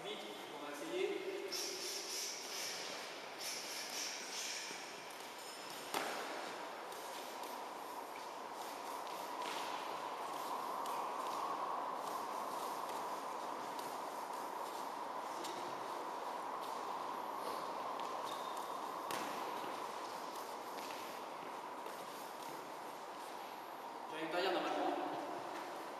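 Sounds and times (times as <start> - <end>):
steady hum: 0.0 - 25.9
feet shuffling on gym floor: 2.4 - 23.8.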